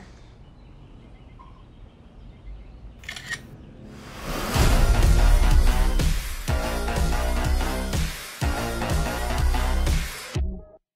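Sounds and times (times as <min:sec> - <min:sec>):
camera shutter click: 0:03.0 - 0:03.5.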